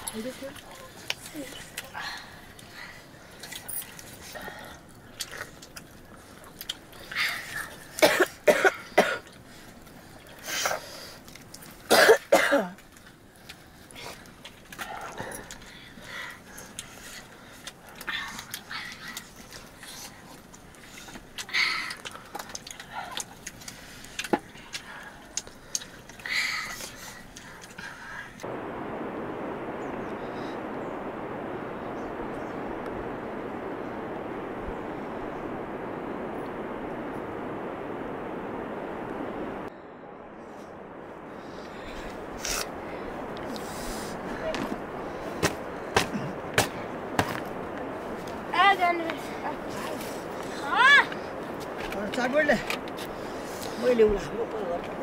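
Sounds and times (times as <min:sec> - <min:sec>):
steady even hiss: 0:00.0 - 0:55.0
person coughing: 0:08.0 - 0:09.2, 0:11.9 - 0:12.8.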